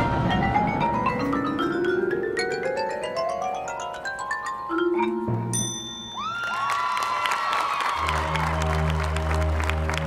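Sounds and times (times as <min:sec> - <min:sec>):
stadium crowd cheering: 0:06.0 - 0:10.0
rising whoops: 0:06.1 - 0:09.2
applause: 0:06.2 - 0:10.0.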